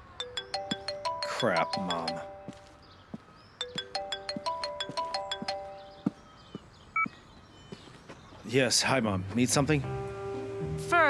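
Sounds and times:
phone ringtone bell-like notes: 0.0s - 2.8s, 3.6s - 6.2s.

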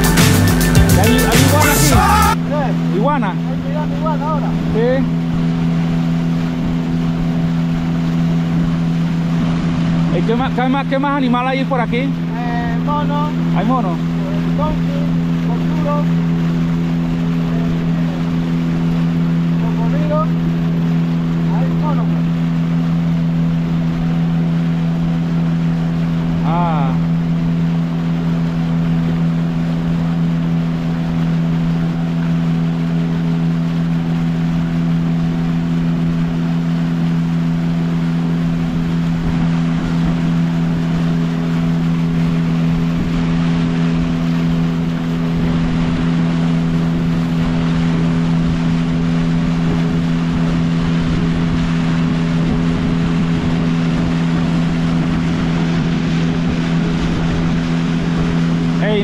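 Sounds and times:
outboard motor droning: 0.0s - 59.0s
water rushing at bow: 0.0s - 59.0s.

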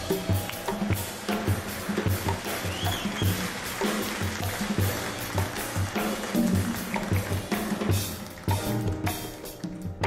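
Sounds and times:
jazz group playing: 0.0s - 10.0s.

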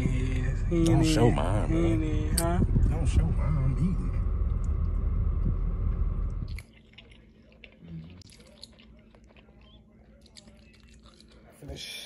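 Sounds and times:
person chewing: 6.5s - 11.6s.

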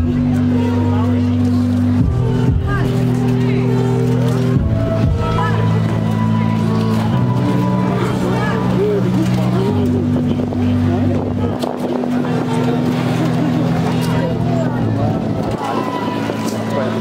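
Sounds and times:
low drone chords: 0.0s - 17.0s
people's voices: 0.0s - 17.0s.

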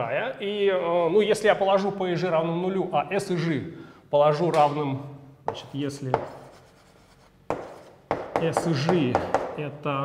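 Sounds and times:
chalk scratching on blackboard: 5.5s - 8.2s
chalk tapping on blackboard: 5.5s - 9.6s.

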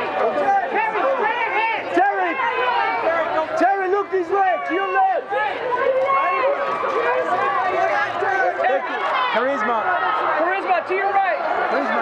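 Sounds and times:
photographers talking and calling: 0.0s - 12.0s.

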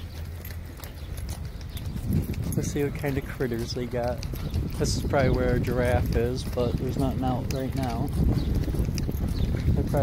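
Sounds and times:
footsteps on brick pavement: 0.0s - 10.0s.

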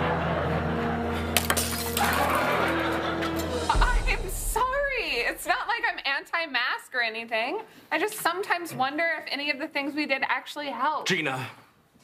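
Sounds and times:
drinking glass breaking: 1.4s - 2.8s
dramatic music chord: 2.3s - 5.7s.

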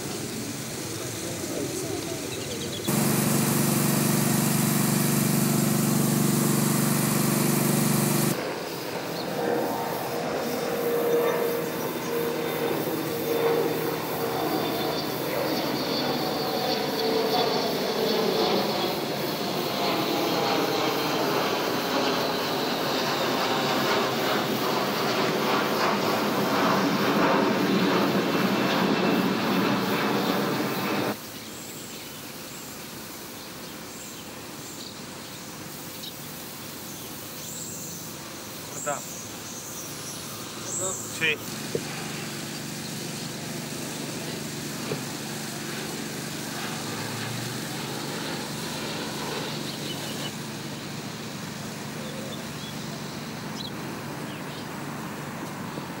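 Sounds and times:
low vehicle drone with hiss: 0.0s - 56.0s
vehicle with shifting pitch: 2.9s - 8.5s, 41.4s - 50.4s.

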